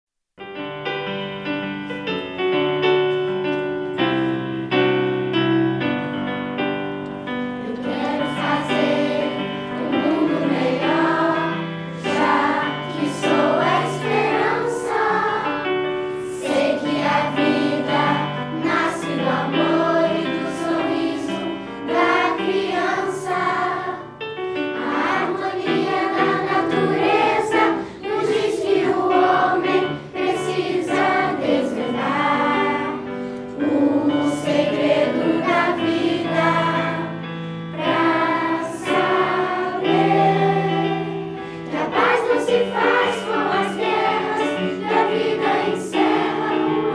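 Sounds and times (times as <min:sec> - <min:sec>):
children's choir singing in unison: 0:07.4 - 0:46.9.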